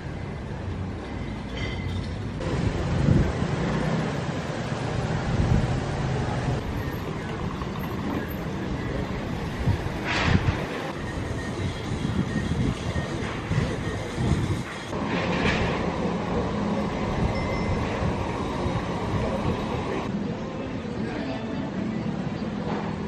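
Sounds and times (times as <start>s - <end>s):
low street rumble: 0.0s - 23.0s.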